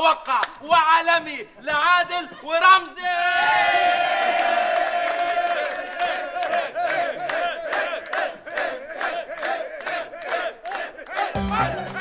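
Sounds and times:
crowd of men shouting and cheering: 0.0s - 12.0s.

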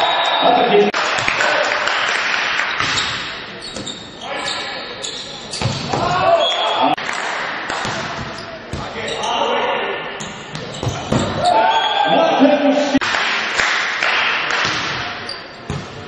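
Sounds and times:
volleyball hits: 2.6s - 3.4s, 5.6s - 9.0s, 12.9s - 16.0s
voices shouting: 11.0s - 13.0s.

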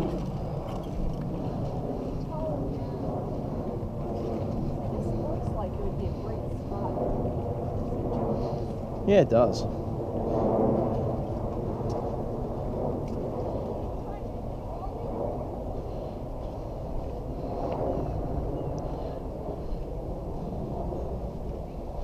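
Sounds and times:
muffled talking: 9.1s - 9.7s.

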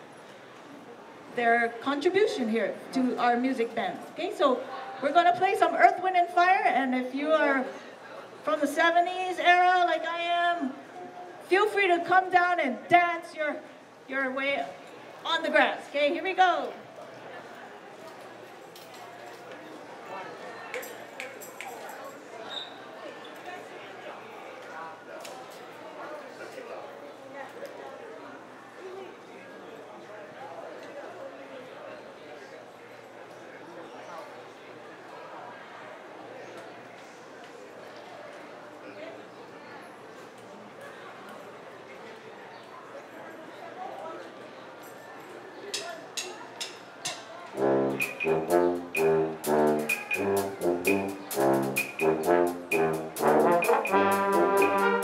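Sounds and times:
background chatter of voices: 0.0s - 55.0s
school band saxophones and brass: 47.5s - 55.0s.

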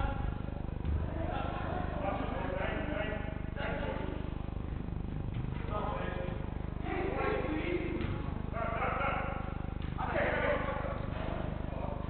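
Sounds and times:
low electrical buzz: 0.0s - 12.0s.

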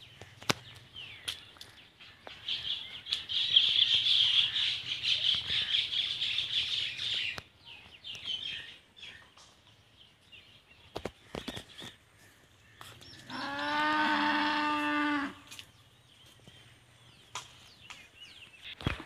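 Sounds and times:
birds chattering and chirping: 0.0s - 19.0s.

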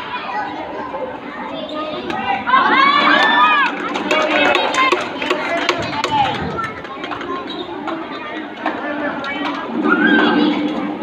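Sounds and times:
voices echoing in a hall: 0.0s - 11.0s
loud shout: 2.3s - 3.8s, 9.8s - 10.5s.

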